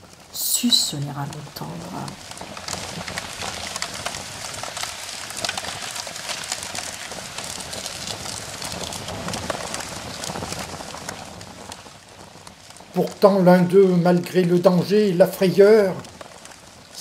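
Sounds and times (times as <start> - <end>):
fire crackling: 0.0 - 17.0.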